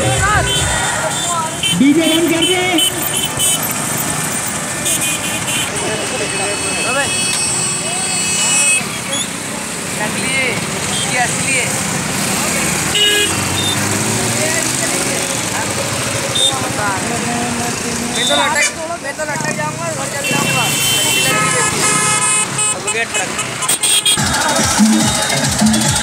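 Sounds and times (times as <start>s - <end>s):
crowd voices and shouts: 0.0s - 4.8s, 24.1s - 26.0s
vehicle engines running: 0.0s - 6.6s, 8.8s - 20.7s
horns tooting: 0.0s - 9.4s, 12.8s - 14.0s, 18.1s - 18.8s, 20.2s - 26.0s.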